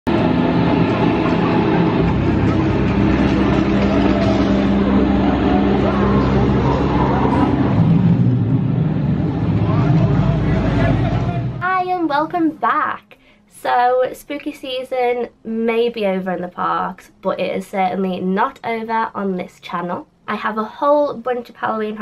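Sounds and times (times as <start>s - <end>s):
low droning rumble: 0.1s - 11.6s
indistinct voices: 0.2s - 11.7s.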